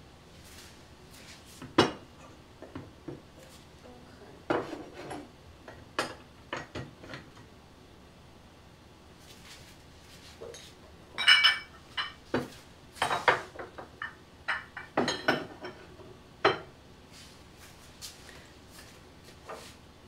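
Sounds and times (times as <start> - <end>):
pottery clinking and knocking: 10.5 - 16.7.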